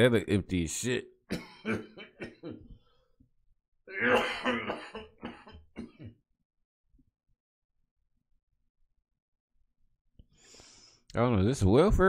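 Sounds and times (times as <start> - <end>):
man coughing: 1.3 - 2.7, 3.9 - 6.2.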